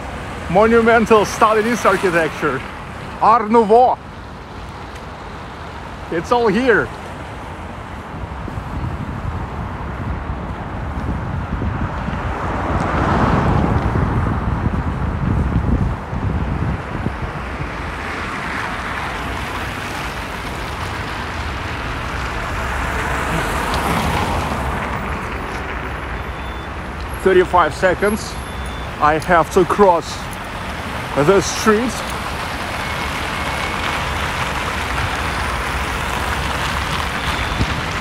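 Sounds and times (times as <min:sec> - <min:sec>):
cars passing close by: 0:00.0 - 0:38.0
wind noise on microphone: 0:07.2 - 0:27.2, 0:32.2 - 0:38.0.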